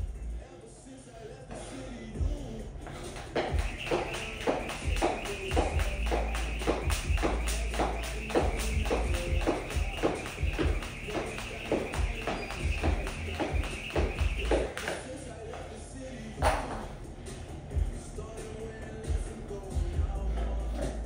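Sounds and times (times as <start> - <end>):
background music: 0.0 - 21.0
jump rope slapping floor mat: 3.1 - 15.0, 16.4 - 16.9.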